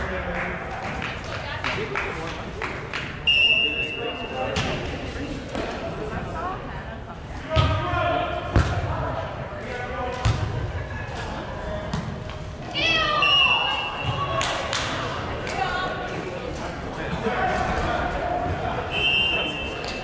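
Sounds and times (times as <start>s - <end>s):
referee's whistle: 3.2s - 4.4s, 13.1s - 14.3s, 18.9s - 19.8s.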